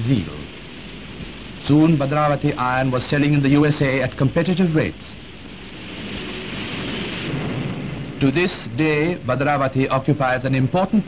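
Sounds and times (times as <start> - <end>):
steady rushing noise: 0.0 - 11.0
low rumble: 5.2 - 10.1.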